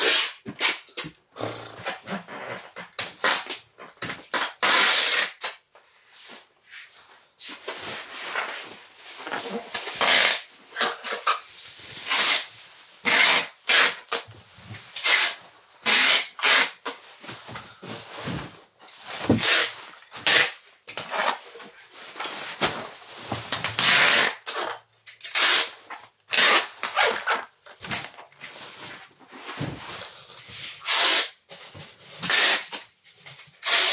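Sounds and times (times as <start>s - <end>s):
packing tape tearing off dispenser: 0.0s - 1.2s, 2.7s - 5.6s, 9.2s - 17.0s, 19.2s - 28.6s, 30.0s - 33.9s.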